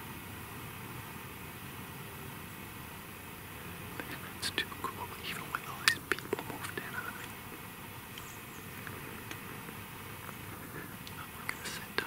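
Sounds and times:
faint steady hush: 0.0s - 12.0s
man whispering: 4.0s - 7.4s, 10.3s - 12.0s.

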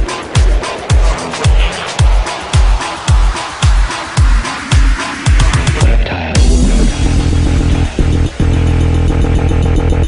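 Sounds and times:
dubstep with buzzing synth bass: 0.0s - 10.0s.

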